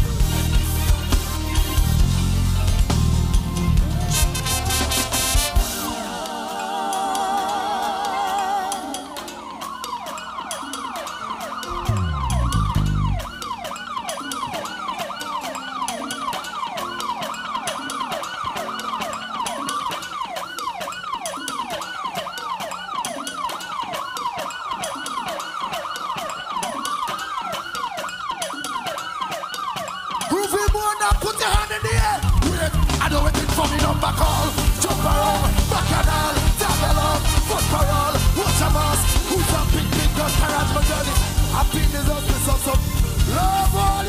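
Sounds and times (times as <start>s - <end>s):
siren sound effect: 0.3s - 44.0s
heavy low boom: 11.8s - 13.3s.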